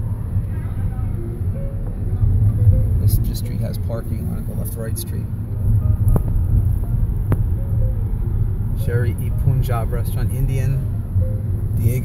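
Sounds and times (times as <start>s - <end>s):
car driving rumble from inside: 0.0s - 12.0s.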